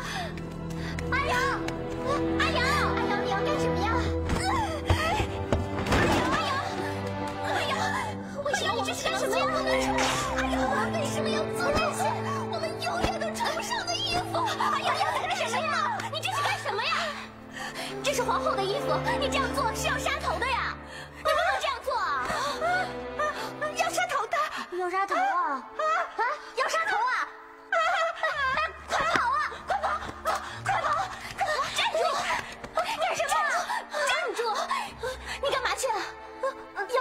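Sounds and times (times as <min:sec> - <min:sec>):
background music: 0:00.0 - 0:37.0
low background score: 0:00.0 - 0:37.0.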